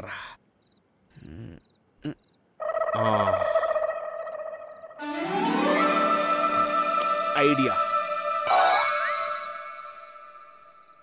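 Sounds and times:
crickets chirping: 0.0 - 5.1, 6.2 - 11.0
film music with bowed strings: 5.0 - 10.3
person speaking over music: 7.3 - 7.9.

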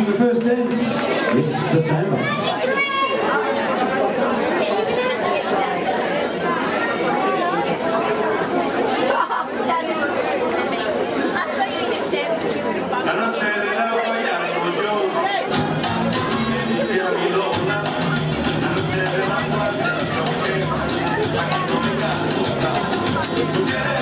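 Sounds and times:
crowd chatter: 0.0 - 24.0
dance music: 15.4 - 24.0.

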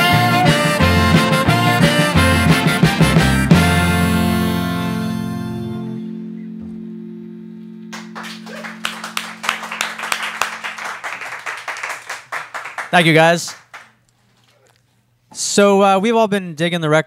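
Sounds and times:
live band final chord ringing: 0.0 - 12.8
people clapping: 7.9 - 14.0.

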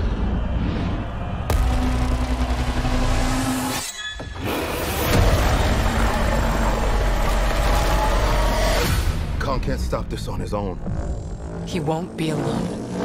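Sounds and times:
heavy cinematic hit: 1.4 - 3.7.

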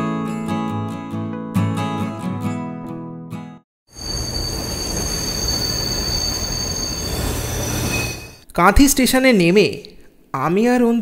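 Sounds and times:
high squeal of train wheels: 3.9 - 8.4
train rumbling on track: 4.0 - 8.4.

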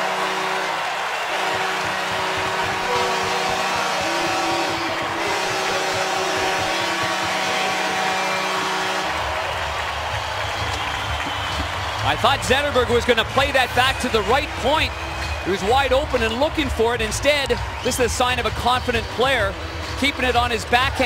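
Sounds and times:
goal horn long note: 0.0 - 9.4
arena music: 0.0 - 21.0
crowd cheering: 0.0 - 21.0.

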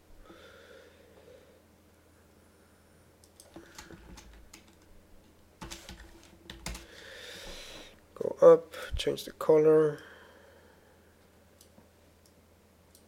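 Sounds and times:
faint keyboard typing and clicks: 3.2 - 4.9, 5.6 - 7.0.

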